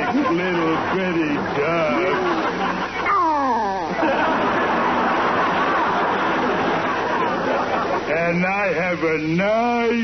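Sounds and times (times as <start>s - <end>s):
studio audience laughter: 0.0s - 3.1s, 3.7s - 8.2s.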